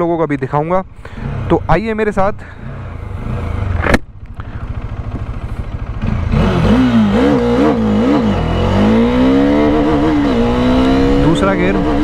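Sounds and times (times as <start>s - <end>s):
motorcycle engine accelerating: 2.6s - 12.0s.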